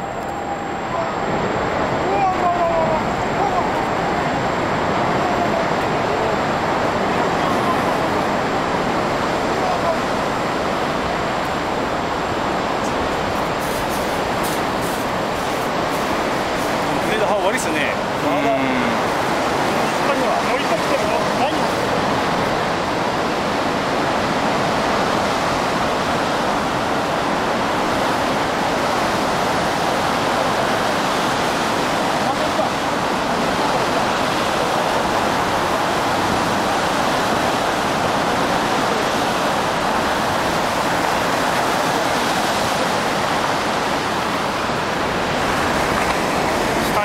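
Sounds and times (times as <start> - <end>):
turbulent water rushing: 0.0 - 47.0.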